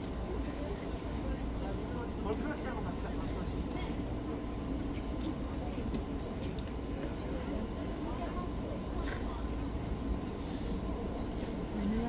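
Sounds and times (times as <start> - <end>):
crowd chattering: 0.0 - 12.0
low city rumble: 0.0 - 12.0.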